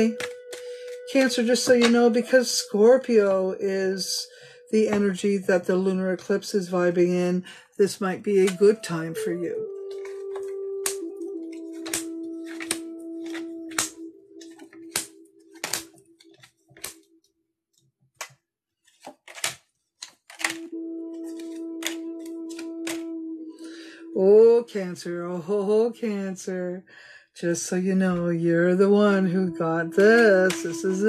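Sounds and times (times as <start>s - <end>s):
held musical tone: 0.0s - 7.3s, 8.0s - 17.2s, 20.5s - 25.9s, 28.0s - 31.0s
cards shuffling: 9.9s - 17.0s, 18.2s - 23.1s.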